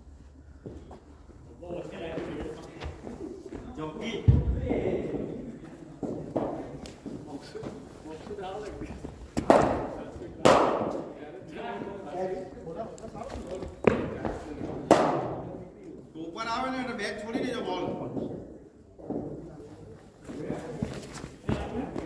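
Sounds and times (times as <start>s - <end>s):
cricket ball impacts: 9.4s - 11.1s, 13.8s - 15.4s.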